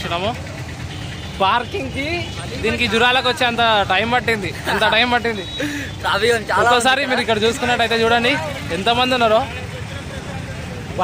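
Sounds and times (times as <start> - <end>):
crowd noise: 0.0 - 11.0
men talking: 0.0 - 11.0
road traffic: 0.0 - 11.0.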